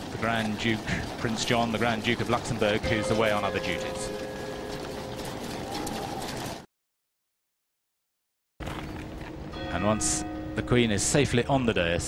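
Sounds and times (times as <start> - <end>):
outdoor crowd ambience: 0.0 - 6.7.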